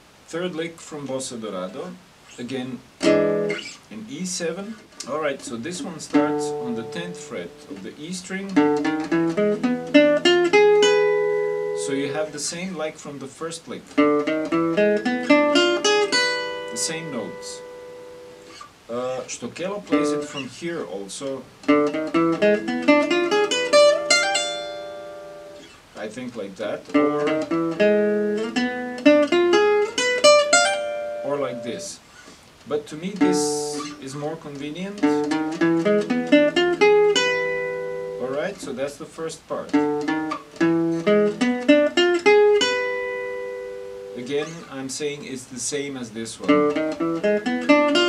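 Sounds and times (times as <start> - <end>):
jazz guitar fast picked notes: 2.4 - 12.5, 13.9 - 32.2, 32.8 - 45.2, 46.3 - 48.0.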